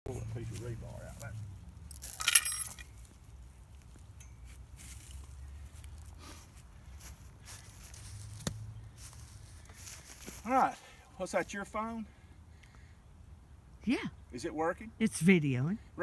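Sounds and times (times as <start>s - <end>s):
metallic clink with ringing: 1.9s - 3.0s, 4.2s - 4.6s.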